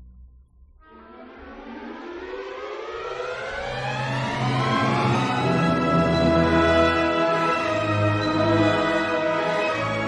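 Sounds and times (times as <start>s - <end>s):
orchestral music with strings: 0.9s - 10.0s.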